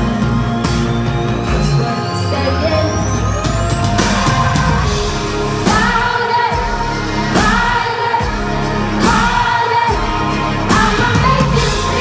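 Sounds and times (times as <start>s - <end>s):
live pop band playing: 0.0s - 12.0s
woman singing into microphone: 5.6s - 12.0s.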